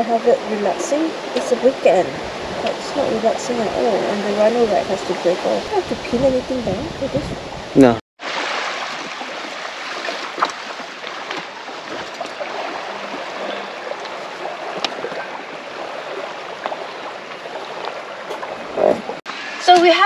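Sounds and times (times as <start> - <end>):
small waves lapping at shore: 0.0 - 7.2, 8.2 - 19.9.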